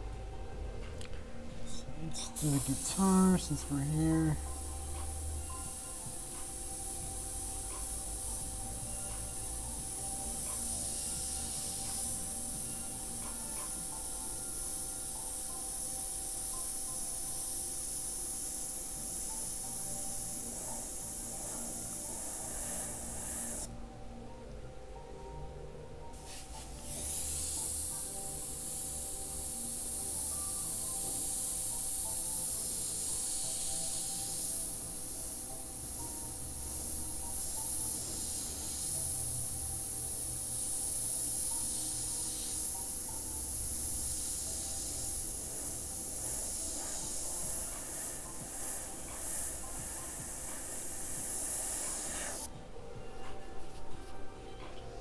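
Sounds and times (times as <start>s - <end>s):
airbrush hissing: 2.1s - 23.7s, 26.2s - 52.5s.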